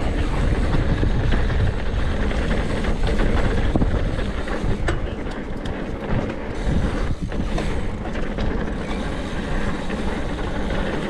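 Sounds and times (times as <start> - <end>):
bike rattling over rough ground: 0.0 - 11.0
knobby tyres rumbling on dirt: 0.0 - 11.0
sharp clicks and knocks: 0.0 - 11.0.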